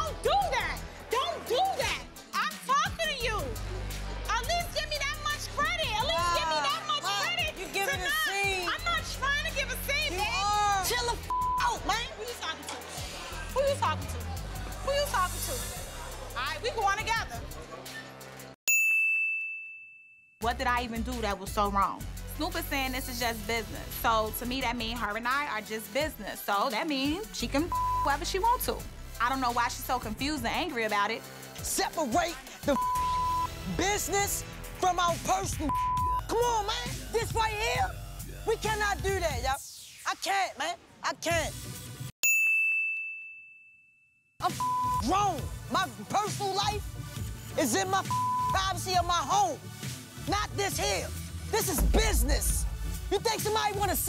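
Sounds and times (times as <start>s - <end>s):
background music: 0.0s - 18.6s, 20.4s - 42.1s, 44.4s - 54.0s
bright ding ringing: 18.7s - 20.3s, 42.3s - 44.0s.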